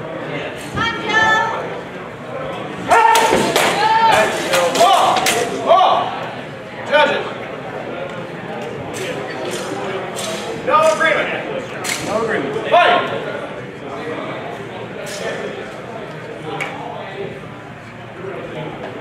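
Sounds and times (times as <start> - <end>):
men shouting: 2.8 - 6.2.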